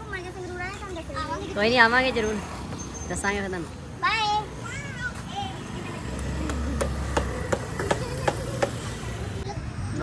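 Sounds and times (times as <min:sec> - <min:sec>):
motorbike passing: 0:00.0 - 0:10.0.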